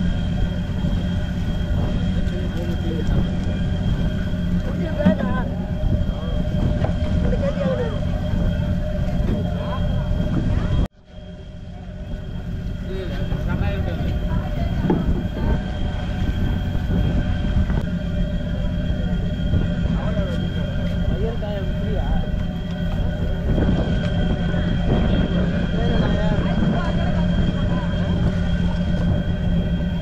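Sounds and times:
boat engine rumbling: 0.0s - 30.0s
people's voices: 0.0s - 30.0s.

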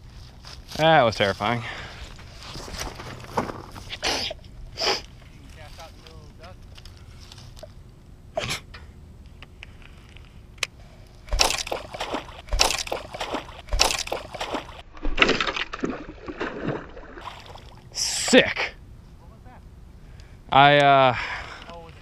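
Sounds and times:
water splashing and sloshing: 11.3s - 18.0s.

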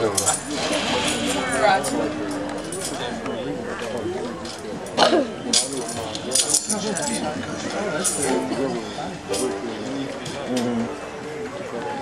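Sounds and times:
low unclear chatter: 0.0s - 12.0s.

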